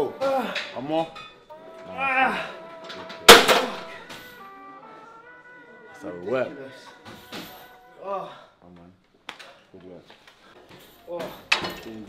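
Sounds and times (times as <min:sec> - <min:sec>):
background music with held notes: 0:00.0 - 0:08.9
weight stack slamming: 0:03.3 - 0:04.0.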